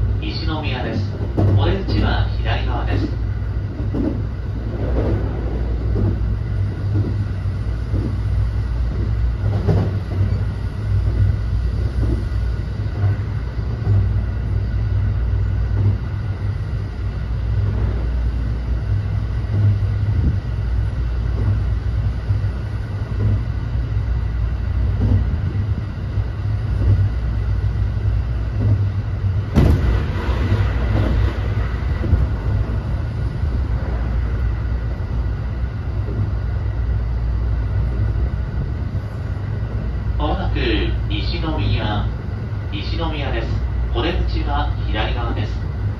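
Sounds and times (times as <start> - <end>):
rush of noise: 0.0 - 45.9
train wheels rumbling on rail: 0.0 - 45.9.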